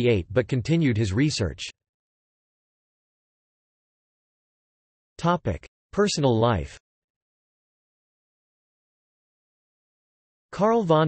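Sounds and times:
synthesized text-to-speech voice: 0.0 - 1.8, 5.2 - 6.8, 10.6 - 11.0.

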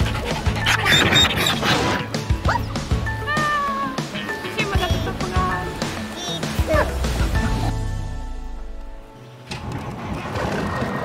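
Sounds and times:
background music with steady beat: 0.0 - 9.2.

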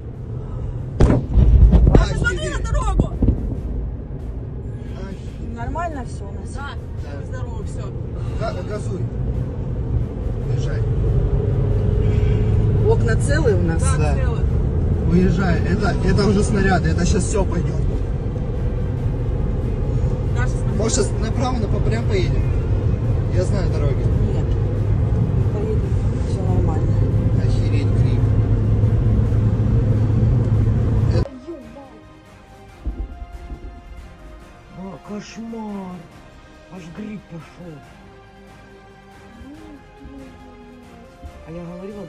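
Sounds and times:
deep low rumble: 0.0 - 31.3, 32.4 - 36.6
car road and engine noise: 0.0 - 42.0
explosion blast: 0.9 - 4.8, 32.8 - 34.7.

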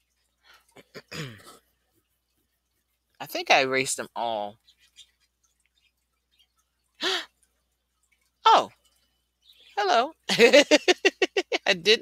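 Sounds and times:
woman clearing her throat: 0.8 - 1.6.

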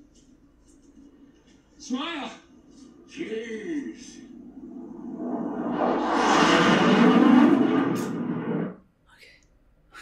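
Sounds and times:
loud dense rushing: 4.1 - 8.8.

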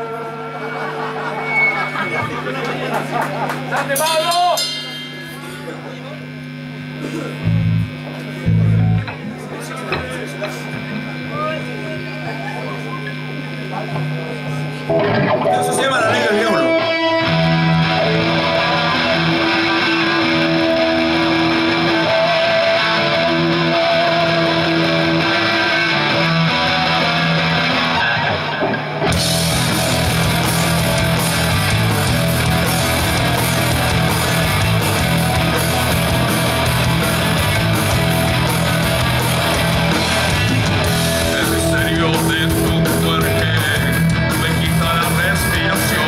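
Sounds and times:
heavy rock band playing: 0.0 - 10.8, 14.9 - 46.0
electric guitar riff: 0.0 - 46.0
drums and cymbals crashing: 0.8 - 5.9, 28.6 - 46.0.

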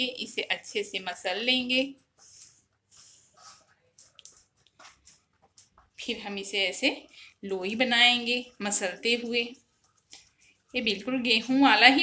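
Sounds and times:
hand kneading dough: 0.6 - 12.0.

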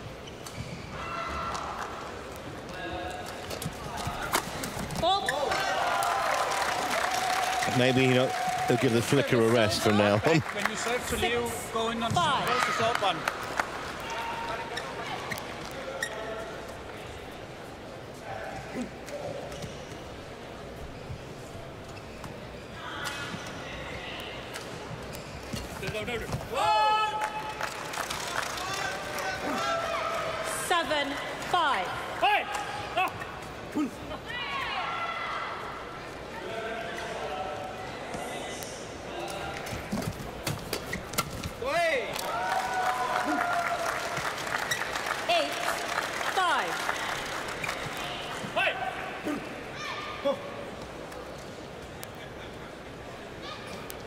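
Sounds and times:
shoes squeaking on court: 0.0 - 1.0, 14.6 - 16.8, 19.0 - 22.8, 24.9 - 26.5, 39.7 - 41.6.

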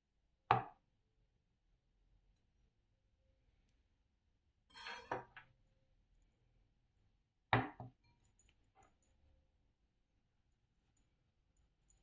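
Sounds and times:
scrape on wooden cutting board: 4.7 - 5.4
knocks and taps on cutting board: 7.6 - 7.9.

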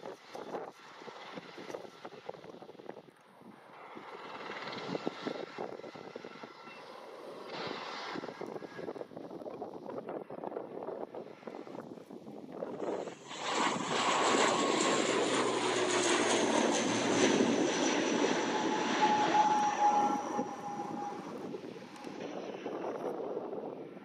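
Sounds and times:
turboprop engines at takeoff: 0.0 - 24.0.

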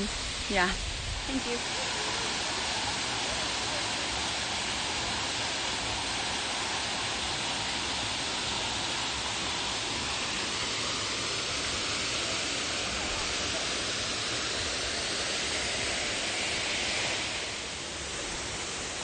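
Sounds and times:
small waterfall pouring: 0.0 - 19.0.

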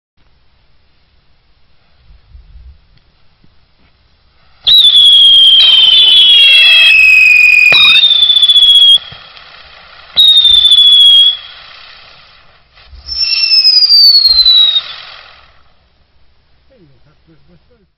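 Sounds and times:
hiss of burning charges: 3.2 - 17.9
firework wheels whistling: 4.3 - 15.8.

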